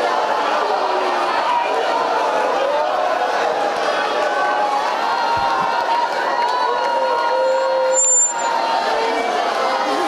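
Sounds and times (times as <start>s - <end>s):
congregation crying out and praying: 0.0s - 10.0s
brief high whistle: 7.5s - 8.5s.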